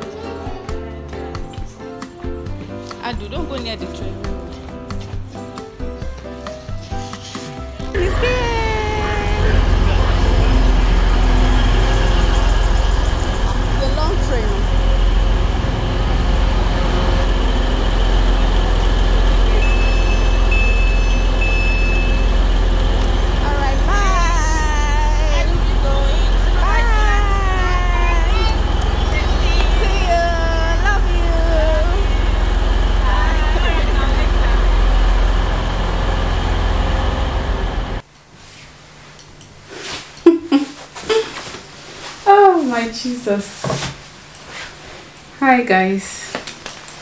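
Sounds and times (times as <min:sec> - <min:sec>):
train low rumble: 0:07.9 - 0:38.0
high door-warning beeps: 0:19.5 - 0:22.8.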